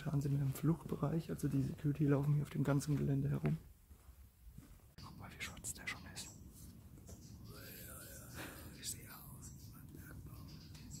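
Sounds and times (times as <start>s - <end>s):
man whispering: 5.0s - 6.6s, 7.4s - 11.0s.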